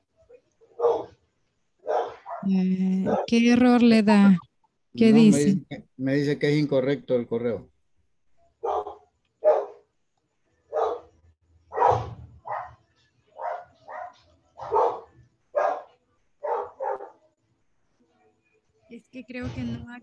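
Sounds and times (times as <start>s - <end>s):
dog barking: 0.6s - 1.2s, 1.8s - 3.3s, 8.6s - 9.9s, 10.7s - 11.1s, 11.7s - 12.8s, 13.4s - 17.2s.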